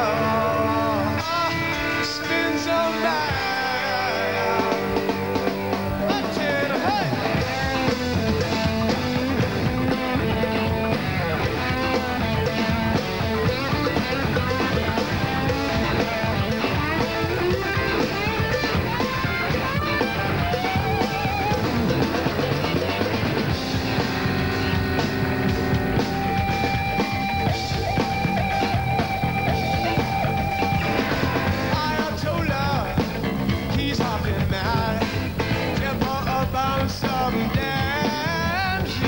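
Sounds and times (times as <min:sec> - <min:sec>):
electric guitar lines: 0:00.0 - 0:39.0
rock band playing live: 0:00.0 - 0:39.0.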